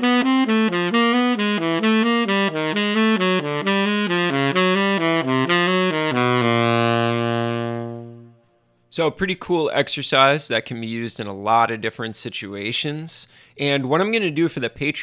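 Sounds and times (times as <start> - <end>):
solo saxophone arpeggios: 0.0 - 8.5.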